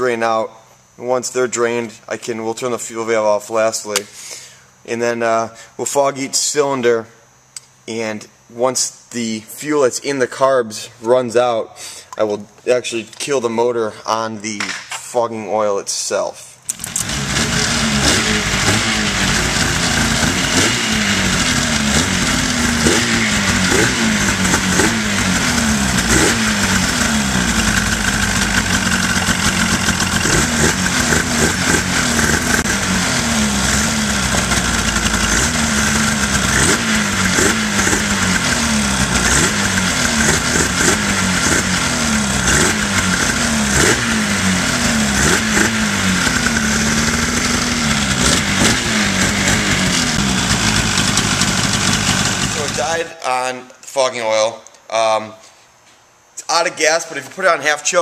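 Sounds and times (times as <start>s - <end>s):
two-stroke engine revving: 16.7s - 53.0s.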